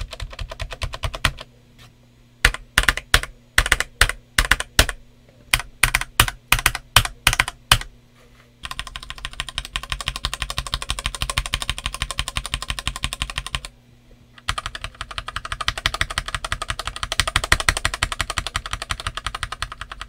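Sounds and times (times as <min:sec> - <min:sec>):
typing on mechanical keyboard: 0:00.0 - 0:01.5, 0:02.5 - 0:07.9, 0:08.6 - 0:13.7, 0:14.4 - 0:20.0.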